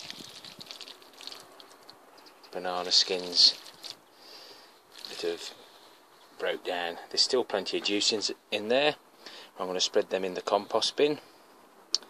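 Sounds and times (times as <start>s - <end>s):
wet squelching and crackling: 0.0s - 4.2s, 4.9s - 5.5s.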